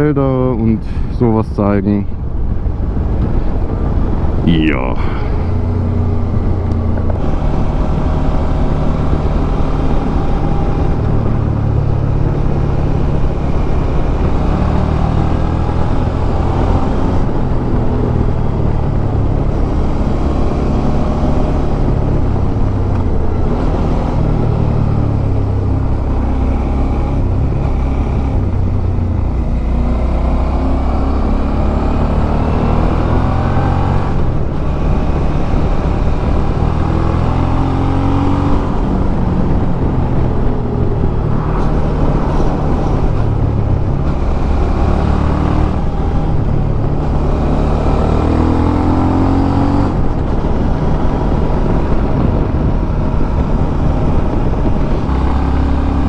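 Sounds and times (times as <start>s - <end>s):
road and wind rumble: 0.0s - 56.0s.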